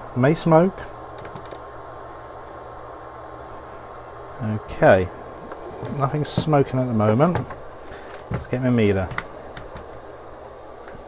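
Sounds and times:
cooling fan humming: 0:00.0 - 0:11.0.

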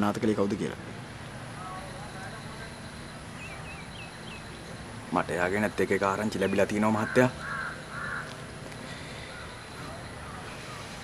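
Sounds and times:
crow cawing: 0:06.9 - 0:10.9.

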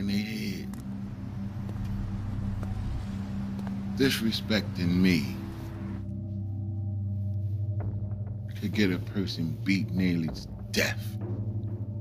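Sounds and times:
cars driving past: 0:00.7 - 0:06.1.

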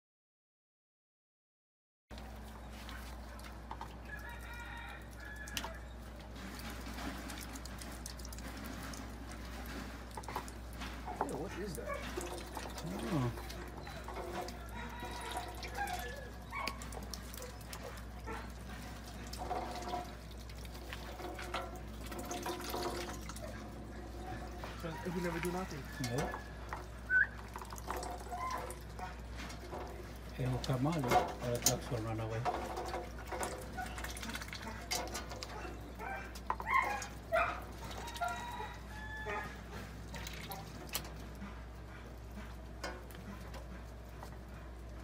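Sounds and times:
ducks dabbling in water: 0:02.1 - 0:45.0
ducks peeping: 0:11.2 - 0:21.2, 0:33.2 - 0:44.7.

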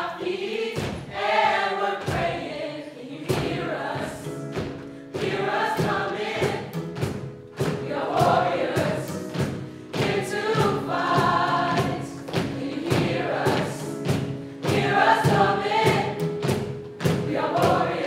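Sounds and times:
group singing in chorus: 0:00.0 - 0:18.0
cajon hits: 0:00.6 - 0:02.5, 0:03.2 - 0:18.0.

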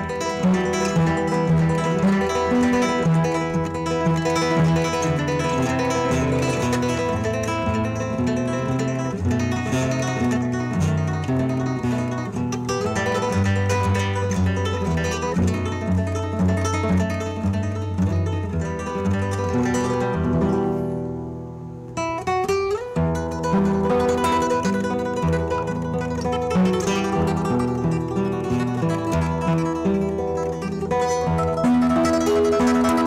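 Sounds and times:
fingerstyle classical guitar: 0:00.0 - 0:33.0.

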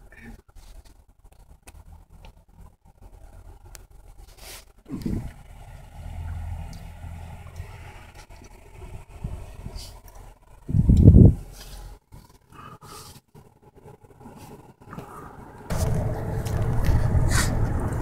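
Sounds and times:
car road noise rumbling: 0:00.0 - 0:18.0
wind noise on microphone: 0:08.8 - 0:10.0, 0:10.6 - 0:11.6, 0:15.7 - 0:18.0
loud low rumbling burst: 0:15.7 - 0:18.0.

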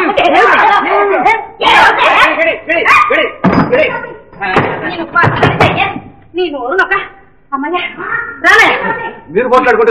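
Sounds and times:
loud bangs on a door: 0:04.5 - 0:06.0.

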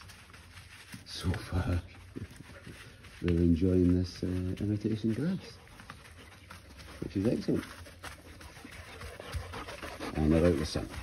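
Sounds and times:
dogs panting quietly: 0:00.0 - 0:11.0.

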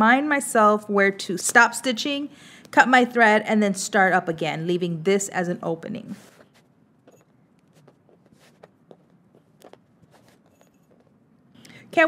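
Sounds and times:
fabric rustling: 0:06.0 - 0:11.4.

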